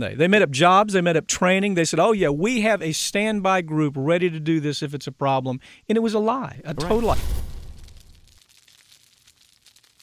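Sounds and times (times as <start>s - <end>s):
faint dense crackling: 6.6s - 10.0s.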